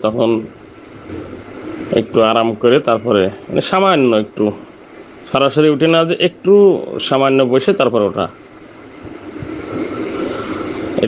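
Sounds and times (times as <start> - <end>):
faint high whine: 0.0 - 11.0
rushing mechanical noise: 0.0 - 11.0.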